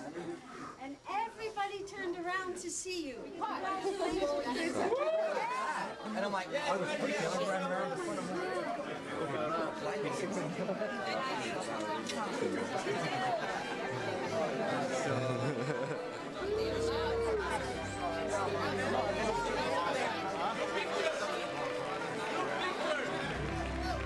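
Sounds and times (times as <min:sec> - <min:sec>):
overlapping crowd chatter: 0:00.0 - 0:24.0.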